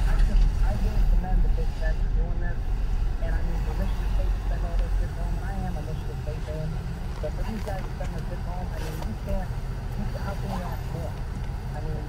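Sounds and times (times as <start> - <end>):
road and engine rumble: 0.0 - 12.0
faint radio talk: 3.2 - 12.0.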